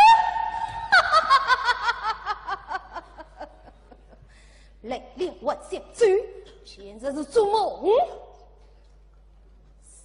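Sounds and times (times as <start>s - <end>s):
woman's stylized stage laugh: 0.6s - 4.2s.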